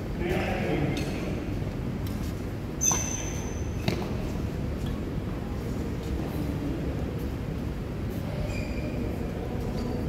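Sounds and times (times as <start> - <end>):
shoe squeaking on court floor: 2.8 - 4.2, 8.4 - 9.1.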